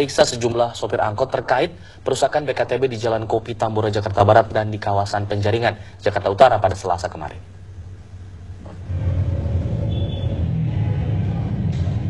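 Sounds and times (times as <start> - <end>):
street traffic engine rumble: 8.5 - 12.0.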